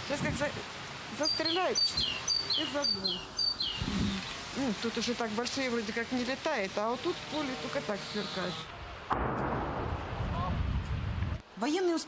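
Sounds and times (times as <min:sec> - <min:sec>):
distant explosion boom: 0:09.1 - 0:11.1.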